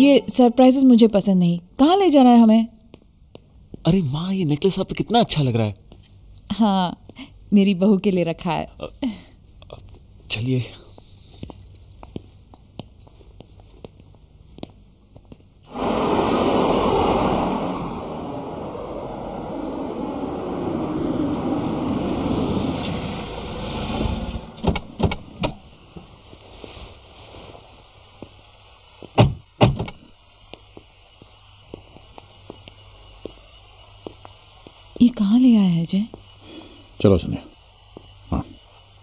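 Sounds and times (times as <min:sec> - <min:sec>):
car driving up: 0:15.7 - 0:26.1
car doors thunking: 0:24.0 - 0:25.7.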